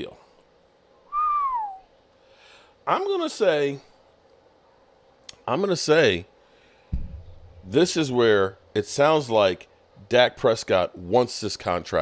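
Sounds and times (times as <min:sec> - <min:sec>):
man whistling short note: 0:01.1 - 0:01.9.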